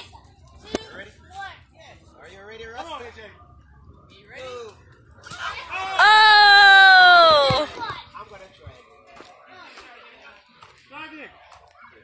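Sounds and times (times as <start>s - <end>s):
voices talking and exclaiming: 0.0s - 12.0s.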